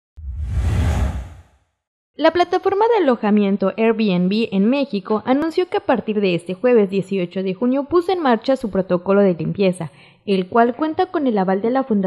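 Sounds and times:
deep rumble: 0:00.2 - 0:01.5
whoosh sound effect: 0:00.2 - 0:01.6.

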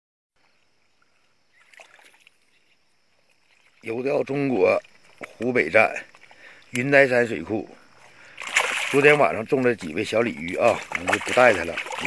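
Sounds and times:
fish splashing in a net: 0:01.6 - 0:02.4, 0:08.1 - 0:12.0.

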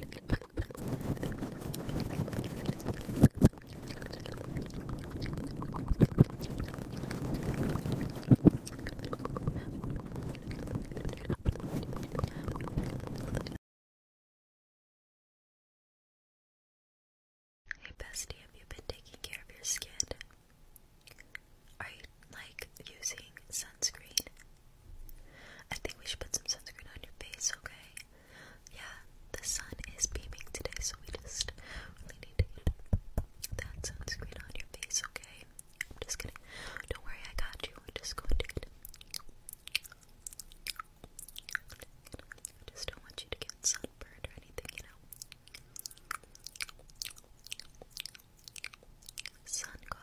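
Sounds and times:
person whispering: 0:00.0 - 0:13.6, 0:17.8 - 0:20.3, 0:21.8 - 0:24.4, 0:25.7 - 0:28.1, 0:28.7 - 0:32.8, 0:33.4 - 0:38.7, 0:41.7 - 0:45.0, 0:49.3 - 0:50.0
wet mouth clicks and smacks: 0:00.0 - 0:13.6, 0:20.0 - 0:21.4, 0:32.2 - 0:50.0.

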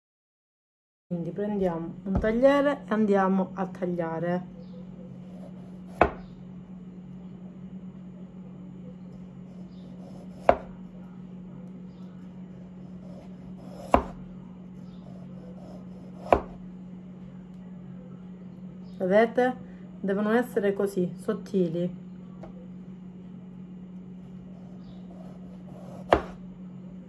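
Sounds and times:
steady low hum: 0:01.1 - 0:27.0
knife slicing potato: 0:09.2 - 0:10.9, 0:12.5 - 0:14.3, 0:15.0 - 0:16.7, 0:24.3 - 0:26.5.

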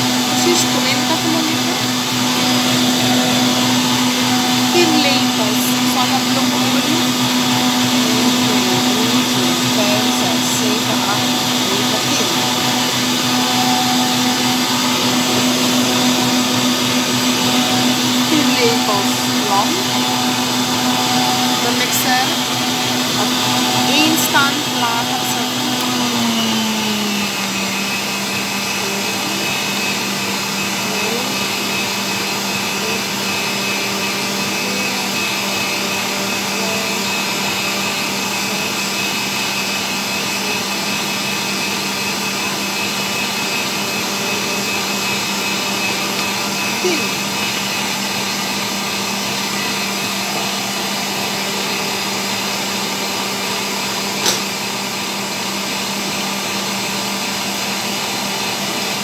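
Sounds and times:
stand mixer whisking: 0:00.0 - 0:59.0
mixer click: 0:54.2 - 0:54.6.

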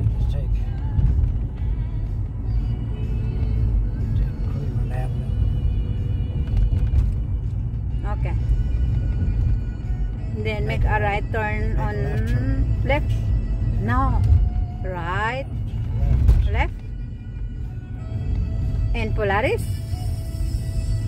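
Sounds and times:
music playing: 0:00.0 - 0:21.0
road and engine rumble: 0:00.0 - 0:21.0.

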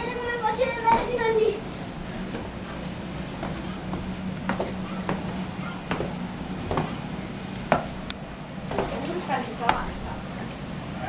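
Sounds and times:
faint distant voices: 0:00.0 - 0:11.0
steady low hum: 0:00.0 - 0:11.0
footsteps on stone steps: 0:02.0 - 0:02.7, 0:03.3 - 0:10.2.

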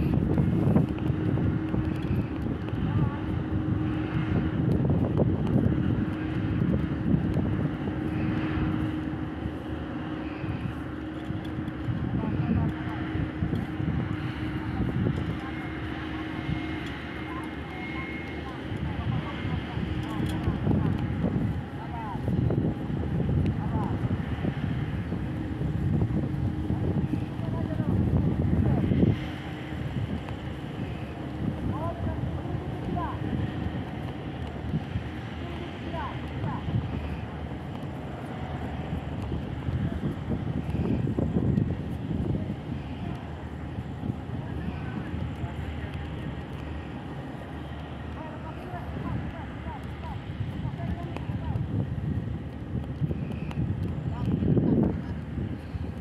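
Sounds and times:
diesel engine humming: 0:00.0 - 0:56.0
workers' voices: 0:10.4 - 0:22.4, 0:26.1 - 0:52.0.

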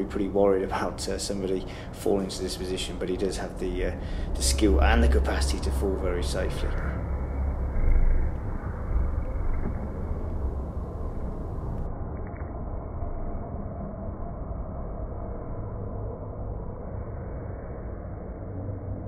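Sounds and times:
low rumble of room noise: 0:00.0 - 0:12.1.

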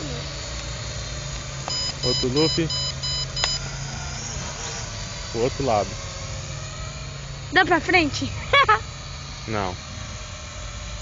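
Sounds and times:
steady low hum: 0:00.0 - 0:11.0
short high electronic beeps: 0:01.7 - 0:03.6.

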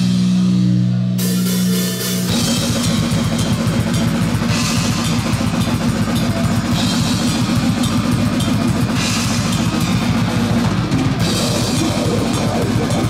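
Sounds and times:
distorted electric guitars and bass: 0:00.0 - 0:13.0
cymbal crashes: 0:01.2 - 0:13.0
fast drumming: 0:01.2 - 0:13.0.

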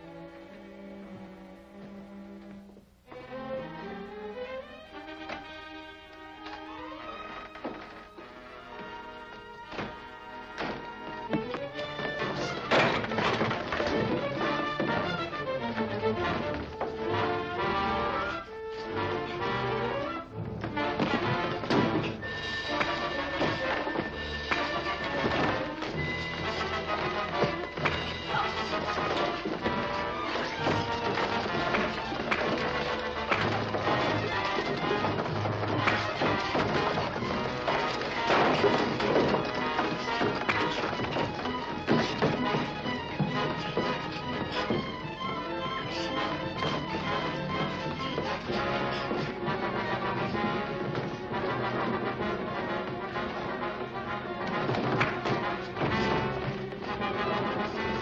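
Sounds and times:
dramatic orchestral music: 0:03.1 - 0:58.0.

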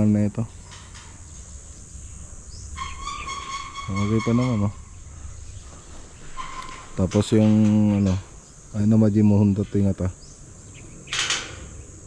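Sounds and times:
high-pitched animal call: 0:02.5 - 0:05.0.

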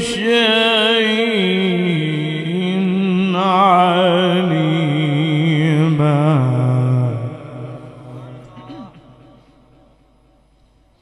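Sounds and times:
man chanting through a microphone: 0:00.0 - 0:09.5.

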